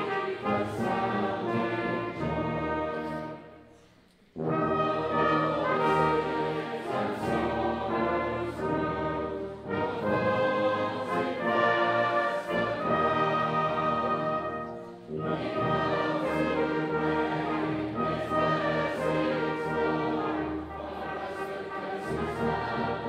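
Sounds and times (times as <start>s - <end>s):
crowd singing along: 0.0s - 3.4s, 4.4s - 23.0s
brass band playing a carol: 0.0s - 23.0s.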